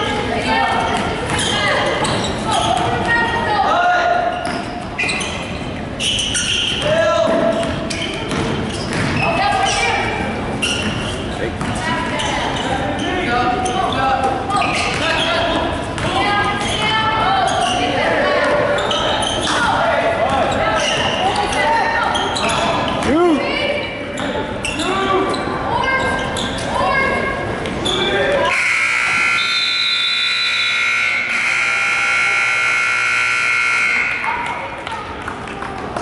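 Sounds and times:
sneakers squeaking on hardwood: 0:00.7 - 0:03.6, 0:04.2 - 0:23.4, 0:24.0 - 0:30.0
ball bouncing: 0:06.8 - 0:09.6, 0:10.8 - 0:12.0
scoreboard horn blast: 0:28.5 - 0:34.3.

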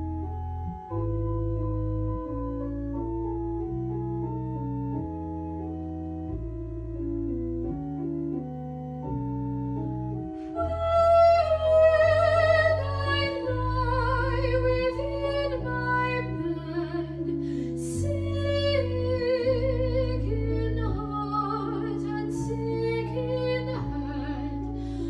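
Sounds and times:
organ playing held chords: 0:00.0 - 0:25.0
woman singing with vibrato: 0:10.6 - 0:25.0.

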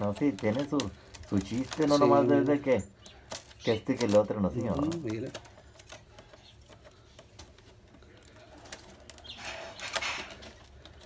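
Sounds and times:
reed clicking and creaking: 0:00.0 - 0:11.0.

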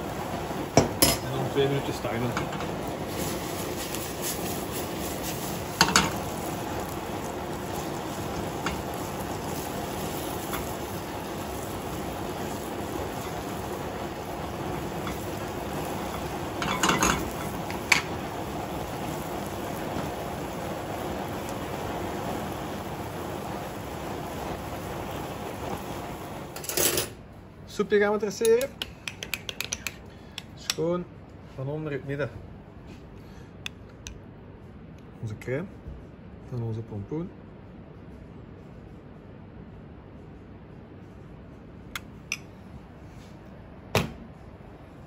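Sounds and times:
squash sizzling in oil: 0:00.0 - 0:27.0
pan and spatula clinking: 0:16.2 - 0:18.1.

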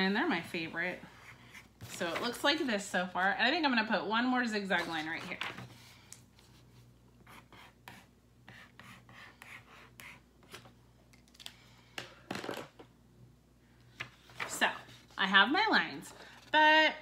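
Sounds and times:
paper rustling: 0:14.0 - 0:15.2.

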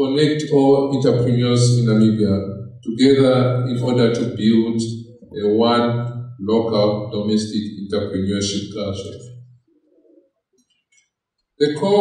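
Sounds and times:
faint low murmur: 0:00.0 - 0:09.3
man speaking into microphone: 0:00.0 - 0:09.3, 0:11.6 - 0:12.0.

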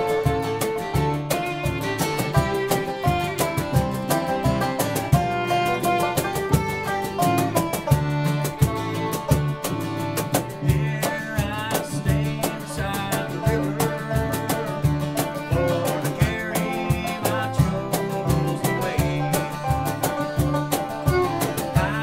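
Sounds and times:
acoustic guitar: 0:00.0 - 0:22.0
banjo: 0:00.0 - 0:22.0
fiddle: 0:00.0 - 0:22.0
upright bass: 0:00.0 - 0:22.0.

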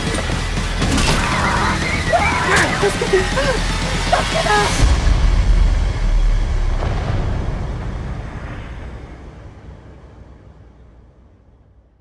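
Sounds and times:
deep low boom: 0:04.8 - 0:10.2.

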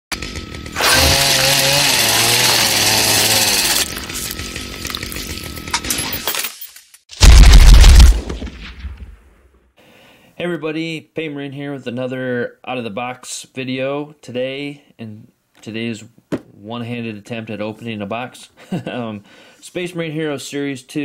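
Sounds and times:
dense grinding noise: 0:00.2 - 0:06.2
deep boom: 0:07.2 - 0:09.4.

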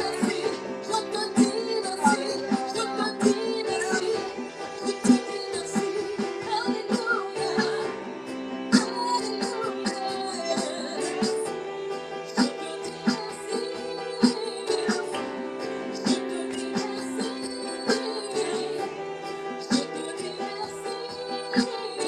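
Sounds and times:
backing singers: 0:00.0 - 0:22.0
keyboard chords: 0:00.0 - 0:22.0
woman singing lead: 0:00.0 - 0:22.0.

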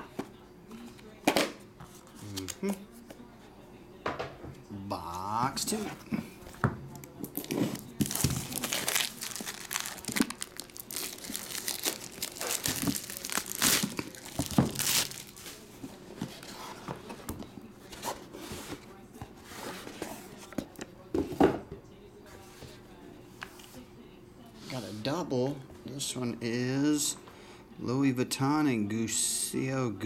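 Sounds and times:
shrink-wrap slit and torn: 0:08.0 - 0:15.3.

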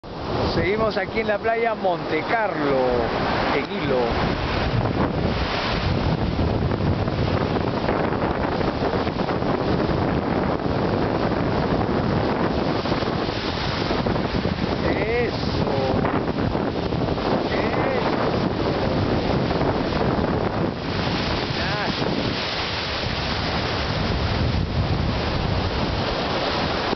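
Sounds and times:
ocean surf breaking: 0:00.0 - 0:26.9
wind buffeting microphone: 0:00.0 - 0:26.9.

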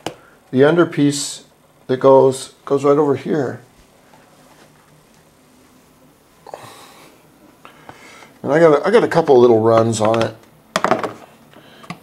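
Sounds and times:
faint hum: 0:00.0 - 0:12.0
breath near microphone: 0:06.4 - 0:08.4, 0:11.5 - 0:12.0.

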